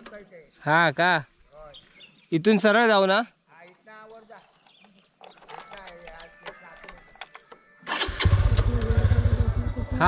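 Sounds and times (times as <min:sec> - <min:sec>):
motorcycle engine idling: 0:07.9 - 0:10.0.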